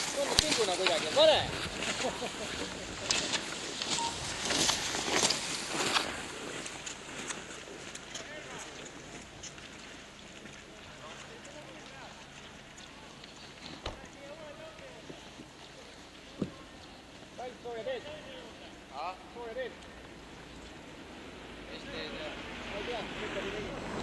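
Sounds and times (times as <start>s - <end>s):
ski poles planting in snow: 0.0s - 18.8s
skis scraping on packed snow: 0.0s - 18.8s, 21.4s - 24.0s.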